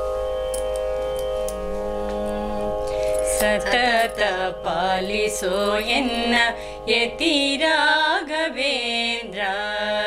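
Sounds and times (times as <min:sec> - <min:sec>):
shruti drone: 0:00.0 - 0:10.0.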